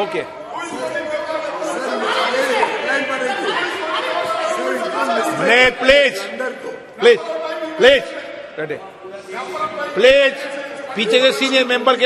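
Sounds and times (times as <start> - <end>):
many voices talking in echoing hall: 0.0 - 12.0.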